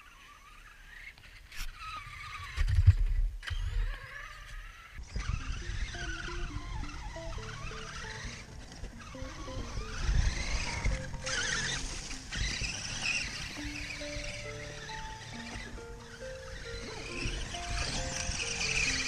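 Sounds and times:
rc truck motor whining: 0.0 - 19.0
background music: 5.4 - 19.0.

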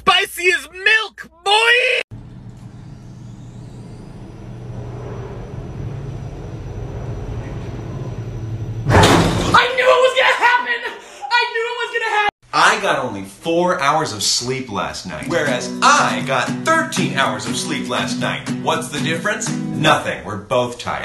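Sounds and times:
woman shouting: 1.3 - 2.0
low rumbling drone: 2.1 - 8.9
sudden loud hit: 8.8 - 9.8.

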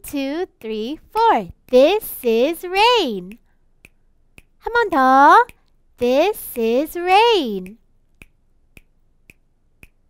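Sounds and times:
faint finger snaps: 7.6 - 10.0.

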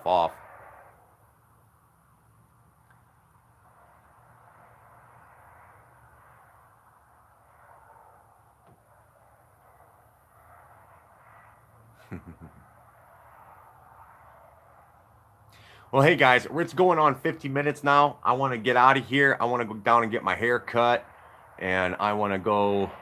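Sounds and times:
faint background noise: 0.0 - 23.0.

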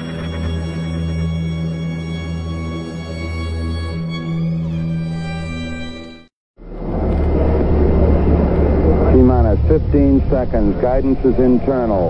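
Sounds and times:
low rumble with hiss: 6.6 - 12.0.

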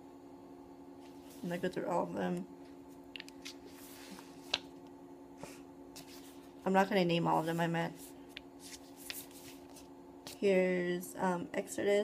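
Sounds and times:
steady hum: 0.0 - 12.0
pages rustling and turning: 3.0 - 4.8, 5.9 - 6.6, 7.3 - 10.4.

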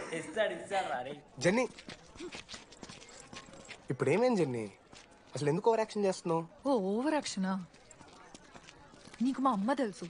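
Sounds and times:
footsteps on hard ground: 1.6 - 3.9, 7.6 - 10.0.

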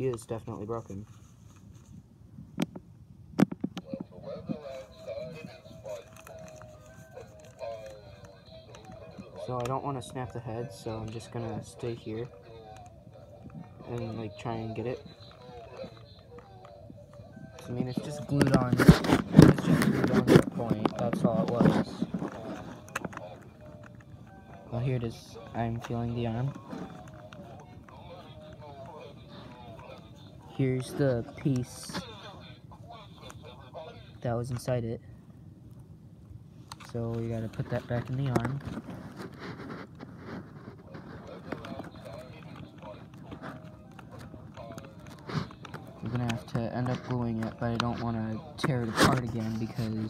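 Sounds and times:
rustling: 0.3 - 2.9, 3.5 - 35.0, 36.5 - 50.0
faint background voices: 3.8 - 35.2, 36.8 - 50.0.

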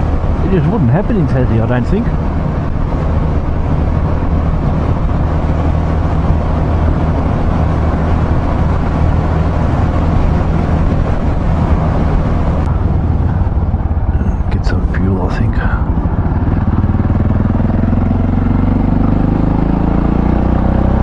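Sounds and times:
wind rushing over microphone: 0.0 - 21.0
motorcycle engine running: 1.8 - 21.0.

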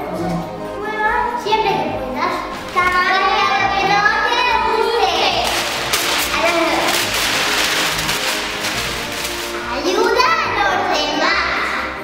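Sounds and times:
child's voice: 0.8 - 5.5, 9.7 - 12.0
newspaper rustling and crumpling: 2.5 - 3.3, 5.2 - 10.1.

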